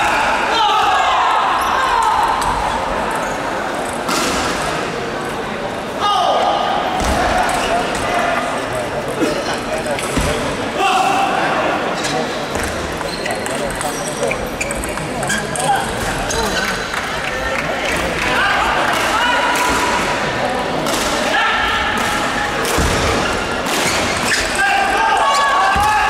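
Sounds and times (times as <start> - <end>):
chatter of voices: 0.0 - 26.0.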